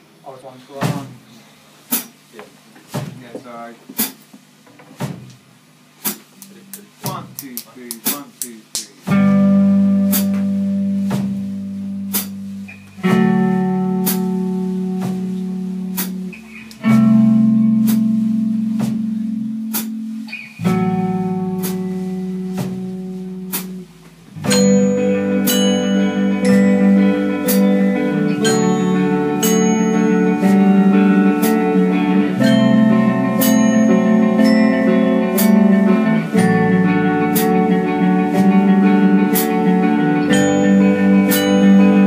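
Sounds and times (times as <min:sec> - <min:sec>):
guitar chords ringing: 0:09.1 - 0:42.0.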